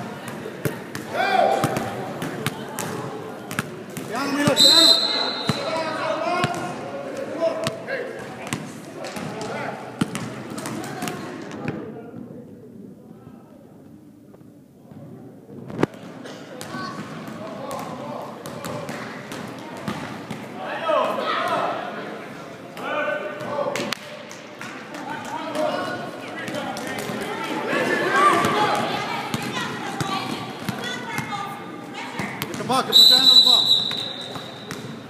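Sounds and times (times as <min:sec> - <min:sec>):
basketball bouncing on gym floor: 0:10.0 - 0:11.2, 0:34.3 - 0:35.0.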